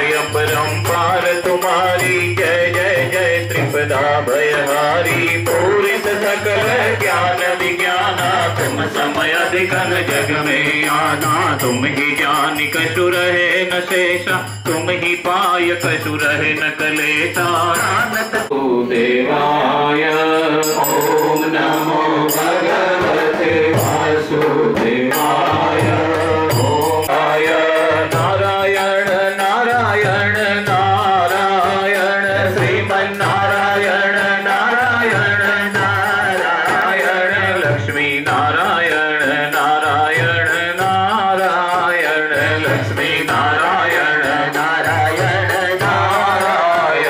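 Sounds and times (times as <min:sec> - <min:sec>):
drum accompaniment: 0:00.0 - 0:18.5, 0:20.6 - 0:47.0
small percussion beat: 0:00.0 - 0:18.5, 0:20.1 - 0:47.0
person chanting melodically: 0:00.0 - 0:47.0
person singing devotional song: 0:00.0 - 0:47.0.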